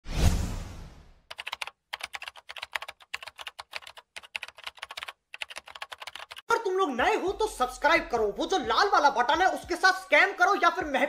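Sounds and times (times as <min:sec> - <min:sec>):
computer keyboard typing: 0:01.3 - 0:06.5.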